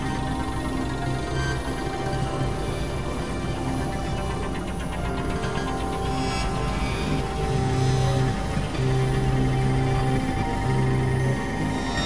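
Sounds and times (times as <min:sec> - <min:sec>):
electronic synthesizer drone music: 0:00.0 - 0:12.0.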